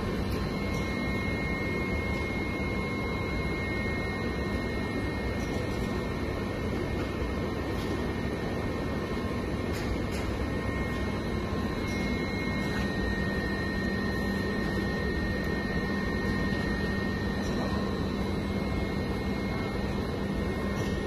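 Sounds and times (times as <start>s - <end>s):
machine hum with low drone: 0.0s - 21.0s.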